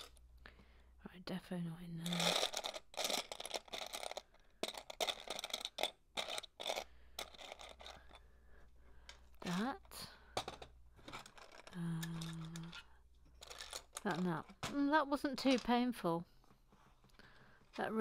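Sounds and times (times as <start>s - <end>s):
plastic pieces clattering: 0.0s - 0.2s, 2.0s - 8.3s, 9.0s - 15.9s.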